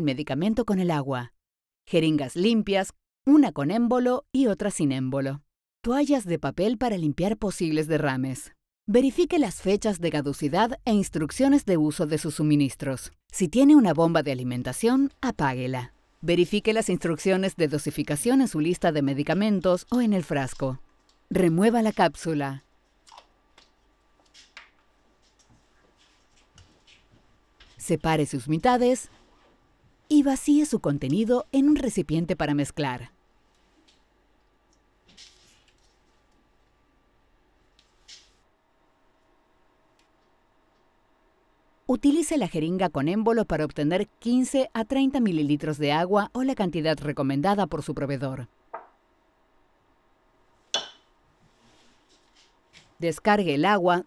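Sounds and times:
bottle set down on counter: 0:50.7 - 0:51.1
syringe clinking glass: 0:50.8 - 0:51.1.

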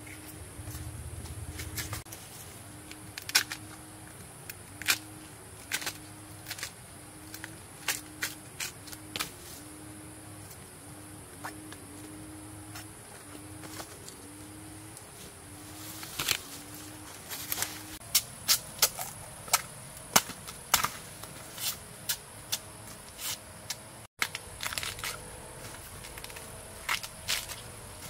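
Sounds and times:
bamboo snapping and cracking: 0:02.9 - 0:03.8, 0:04.4 - 0:09.3, 0:16.1 - 0:16.4, 0:17.5 - 0:21.3, 0:23.7 - 0:28.0.

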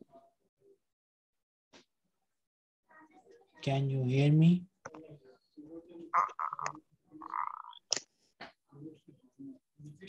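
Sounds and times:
garbled voice on video call: 0:06.0 - 0:08.0.

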